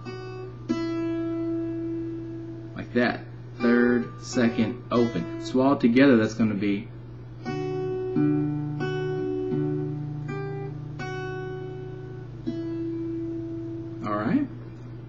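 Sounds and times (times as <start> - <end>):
acoustic guitar fingerpicking: 0.0 - 2.9, 3.5 - 5.6, 7.4 - 15.0
person speaking: 2.8 - 7.0.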